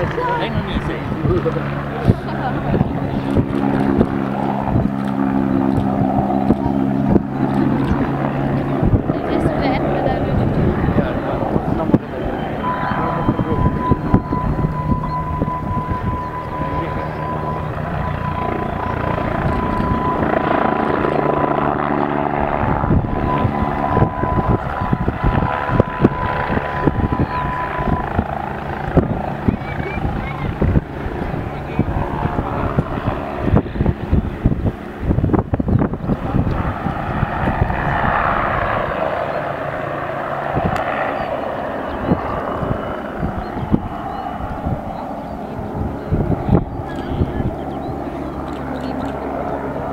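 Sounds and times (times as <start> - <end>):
crowd voices: 0.0 - 49.9
helicopter flying overhead: 0.0 - 49.9
wind buffeting microphone: 0.0 - 49.9
steady high tone: 9.2 - 31.9.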